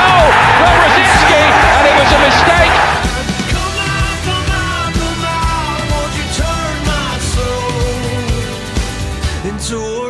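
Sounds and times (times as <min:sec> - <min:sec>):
stadium crowd cheering: 0:00.0 - 0:04.1
background music: 0:00.0 - 0:10.0.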